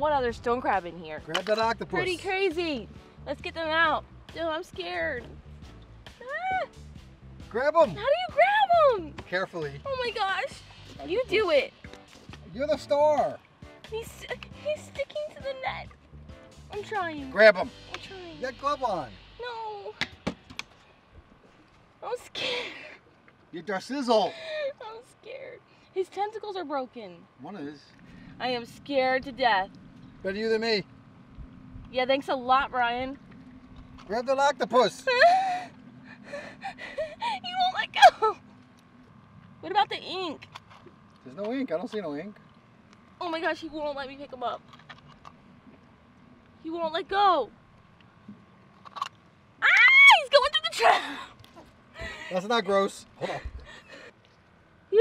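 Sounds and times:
woman squealing: 6.2s - 6.8s, 35.1s - 38.4s, 49.6s - 51.3s
woman whimpering and gasping: 35.2s - 37.4s.

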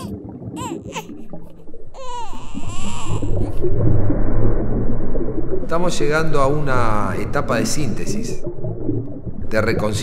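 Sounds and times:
newborn baby crying: 0.0s - 1.1s, 2.0s - 3.5s
low rumbling background: 0.0s - 10.0s.

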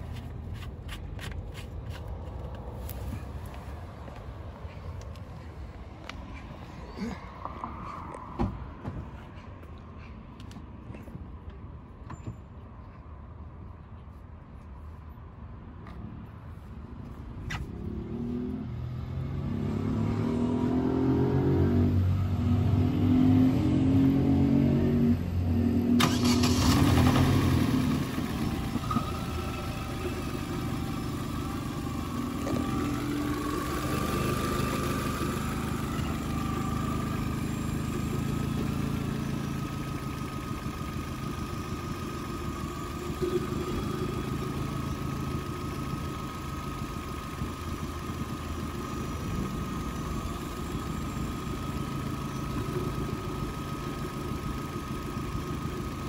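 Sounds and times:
car engine idling: 26.0s - 56.0s.

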